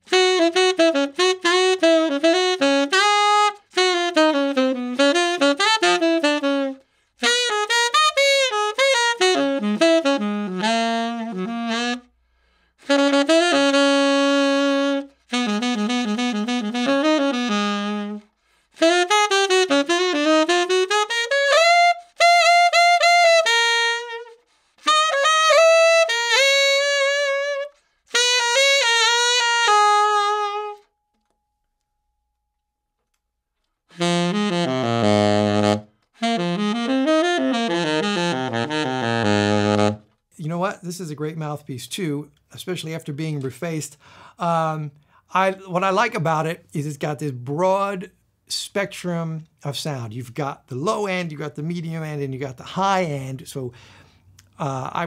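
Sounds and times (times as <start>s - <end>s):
tenor saxophone playing: 0.0s - 31.3s, 33.0s - 41.3s
player breathing: 12.1s - 12.8s, 44.0s - 44.4s, 53.7s - 54.3s.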